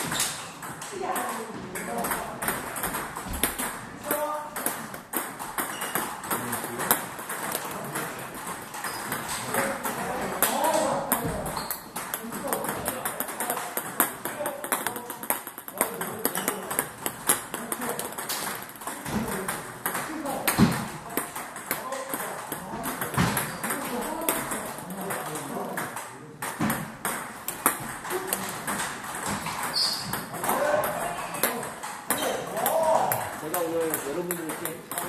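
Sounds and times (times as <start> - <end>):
table tennis balls clicking: 0.0 - 35.0.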